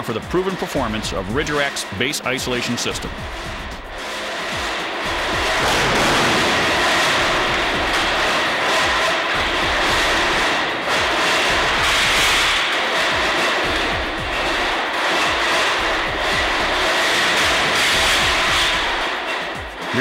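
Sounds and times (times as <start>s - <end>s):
music: 0.0s - 20.0s
steel racks rumbling and rattling: 0.0s - 20.0s.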